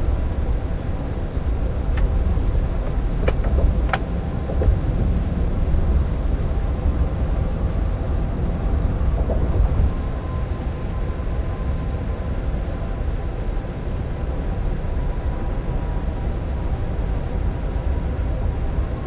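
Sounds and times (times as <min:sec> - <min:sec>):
vehicle rumble inside cabin: 0:00.0 - 0:19.0.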